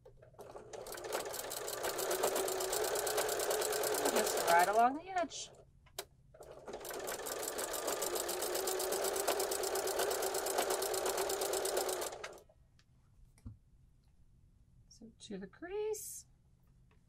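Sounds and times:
sewing machine stitching: 0.4 - 4.9, 6.4 - 12.4.

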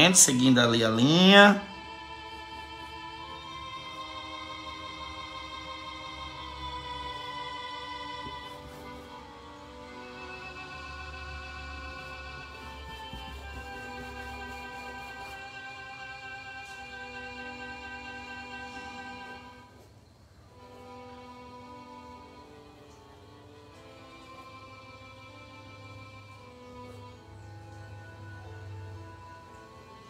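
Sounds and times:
slow instrumental music: 0.0 - 30.0.

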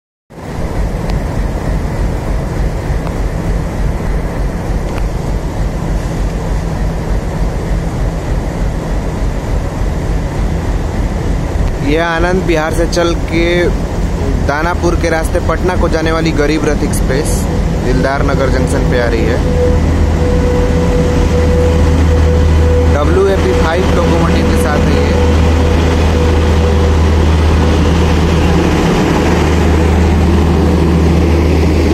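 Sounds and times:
locomotive rumbling: 0.3 - 31.9
train noise: 0.3 - 31.9
mid-pitched whine: 0.4 - 31.9
person speaking: 22.9 - 25.4.

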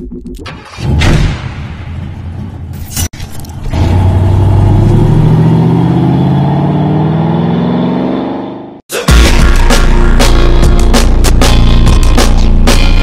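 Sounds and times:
car engine revving: 3.6 - 8.8.

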